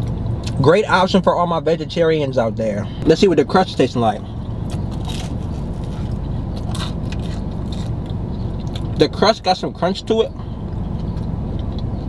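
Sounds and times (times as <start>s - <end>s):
low background rumble: 0.0s - 12.0s
chewing crunchy pizza crust: 4.4s - 9.0s, 10.8s - 12.0s.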